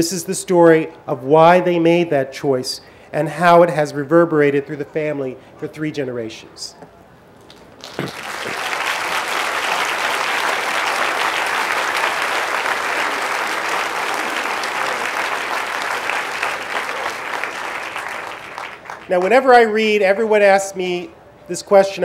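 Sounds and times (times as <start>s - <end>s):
audience applauding: 7.5s - 19.6s.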